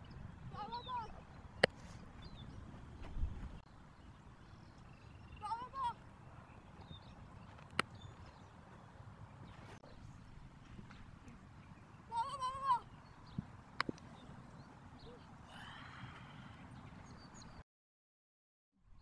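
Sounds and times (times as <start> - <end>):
low outdoor background: 0.0 - 17.6.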